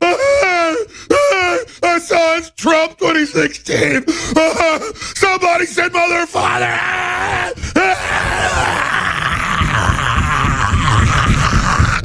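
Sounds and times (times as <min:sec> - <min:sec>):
man groaning: 0:06.4 - 0:12.0.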